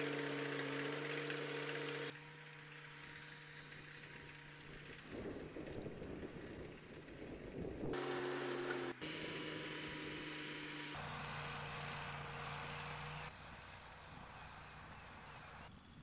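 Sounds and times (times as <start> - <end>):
tractor engine running: 0.0 - 15.9.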